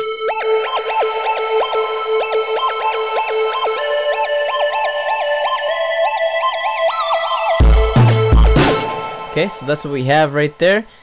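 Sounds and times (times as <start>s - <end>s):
synth lead melody: 0.0s - 10.4s.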